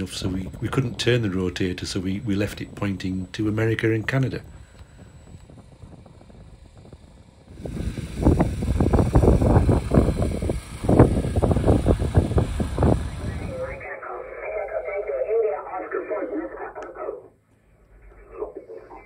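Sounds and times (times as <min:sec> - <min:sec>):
thin radio voice: 0:13.1 - 0:17.4, 0:18.0 - 0:19.0.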